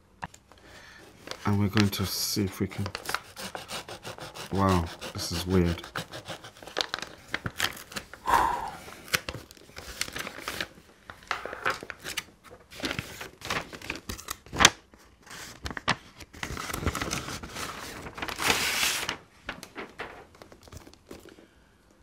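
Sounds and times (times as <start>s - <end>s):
padded envelope being torn open: 2.7s - 3.6s, 6.1s - 8.2s, 9.0s - 10.8s, 11.6s - 14.8s, 15.5s - 21.2s.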